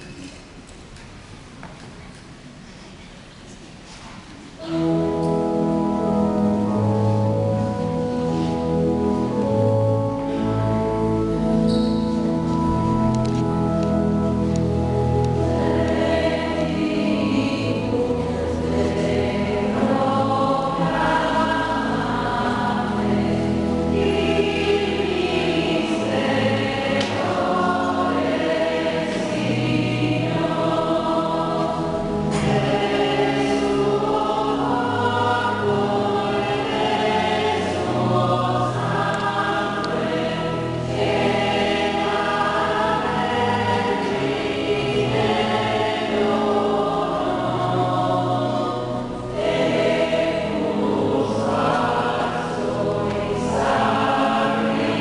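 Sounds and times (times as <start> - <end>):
church choir singing a hymn: 4.6 - 55.0.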